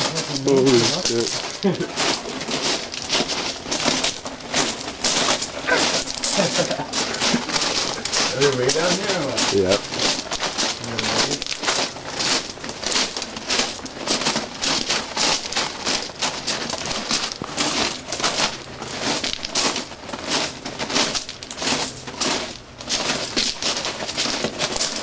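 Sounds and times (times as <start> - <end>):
footsteps crunching on gravel: 0.0 - 25.0.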